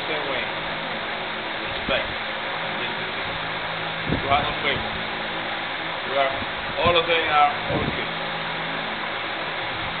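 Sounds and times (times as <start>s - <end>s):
low constant hum: 0.0s - 10.0s
ventilation hiss: 0.0s - 10.0s.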